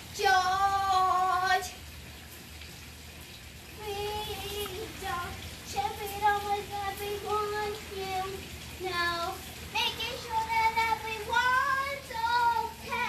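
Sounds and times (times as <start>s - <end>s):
girl singing: 0.0s - 1.8s, 3.7s - 13.0s.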